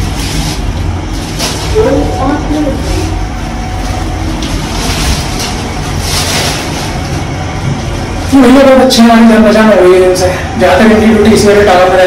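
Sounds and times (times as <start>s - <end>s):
lift car rumble: 0.0s - 12.0s.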